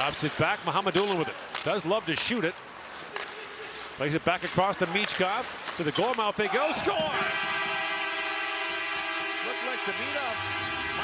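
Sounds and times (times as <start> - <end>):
goal horn blast: 6.8 - 11.0.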